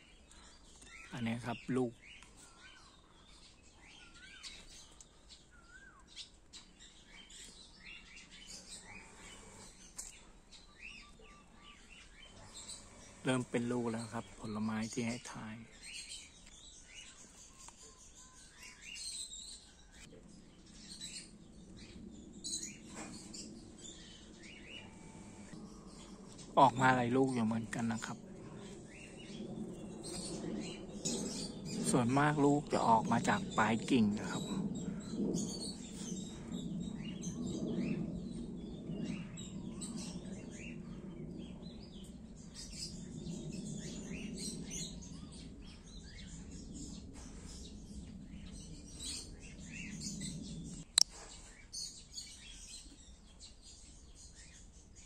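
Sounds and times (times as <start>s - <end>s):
small birds chirping: 0.0s - 55.0s
low background hum: 19.6s - 51.3s.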